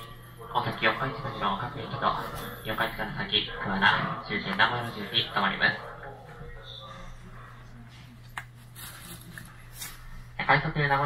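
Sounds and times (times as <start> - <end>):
train carriage hum: 0.0 - 11.0.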